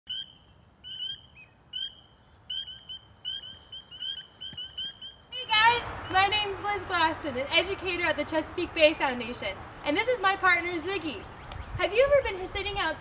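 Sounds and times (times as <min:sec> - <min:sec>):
frogs peeping: 0:00.1 - 0:06.4.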